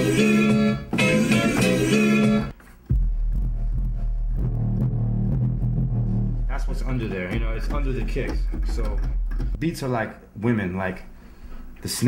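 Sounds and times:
hip-hop loop: 0:00.0 - 0:09.9
deep bass line: 0:02.2 - 0:09.8.

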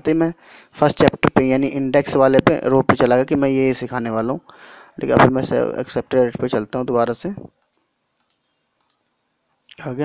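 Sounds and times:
man speaking: 0:00.0 - 0:07.6
computer mouse clicks: 0:07.5 - 0:09.2.

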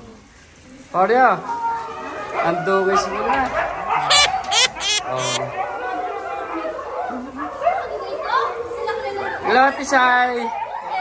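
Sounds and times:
chatter of people: 0:00.0 - 0:11.0
sharp high-pitched call: 0:04.0 - 0:05.4.

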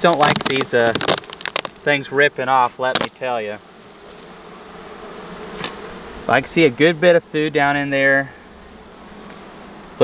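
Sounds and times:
honey bees buzzing: 0:00.0 - 0:10.0.

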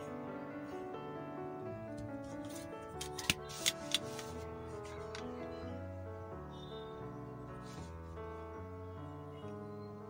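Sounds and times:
soft piano music: 0:00.0 - 0:10.0
sharp plastic clicks: 0:03.0 - 0:04.3.

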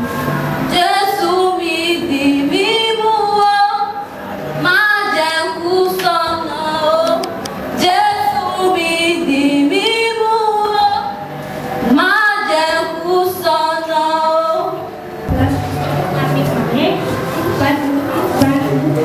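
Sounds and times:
woman singing into a microphone: 0:00.7 - 0:04.0, 0:04.6 - 0:11.2, 0:11.8 - 0:14.9.

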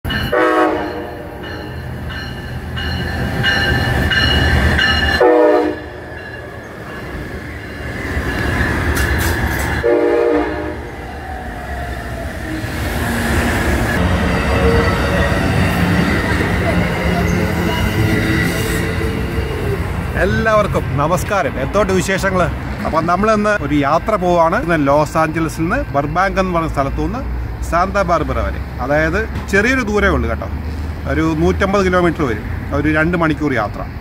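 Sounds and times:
train wheels rumbling on rail: 0:00.1 - 0:34.0
train horn blasts: 0:00.3 - 0:01.4, 0:05.0 - 0:06.0, 0:09.8 - 0:10.9.

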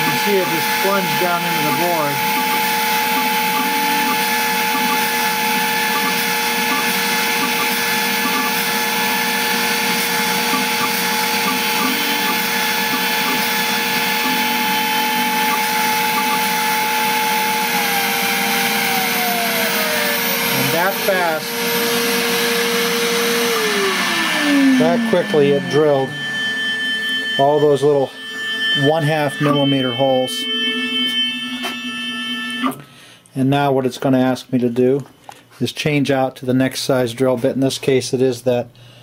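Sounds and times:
motor tone falling: 0:00.0 - 0:32.8
spindle whining: 0:00.0 - 0:33.0.

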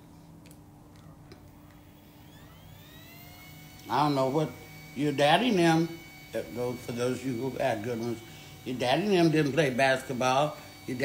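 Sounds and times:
steady low hum: 0:00.0 - 0:11.0
faint siren rising in pitch: 0:01.8 - 0:06.5.

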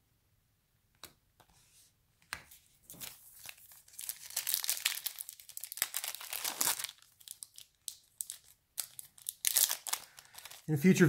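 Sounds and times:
foil wrapper crinkling: 0:02.9 - 0:10.7.

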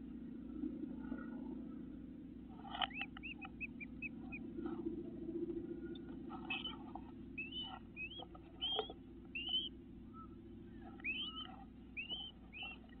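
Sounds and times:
low steady hum: 0:00.0 - 0:13.0
bird whistled calls: 0:02.8 - 0:04.5, 0:05.8 - 0:13.0.

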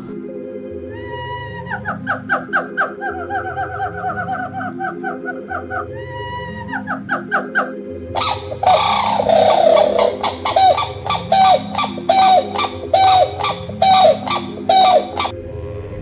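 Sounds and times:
background music: 0:00.0 - 0:16.0
crane honking calls: 0:08.2 - 0:15.3.

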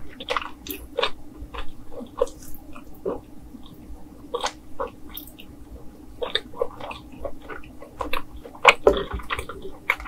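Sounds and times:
chewing food: 0:00.0 - 0:10.0.

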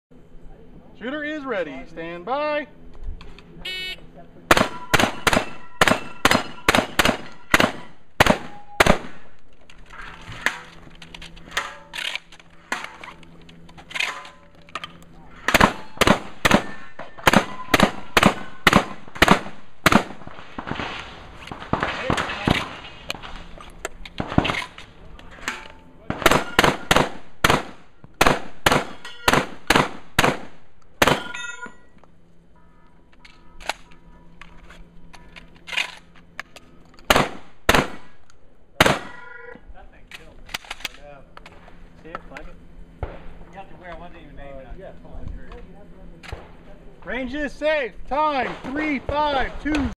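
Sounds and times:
shotgun shots: 0:04.5 - 0:09.4, 0:15.4 - 0:23.5, 0:24.1 - 0:31.4, 0:37.1 - 0:38.2, 0:38.8 - 0:39.2, 0:48.2 - 0:49.9
shells loading clicks and clatter: 0:09.3 - 0:15.1, 0:33.1 - 0:37.2, 0:40.1 - 0:42.5
steel targets clanging: 0:28.9 - 0:29.5.

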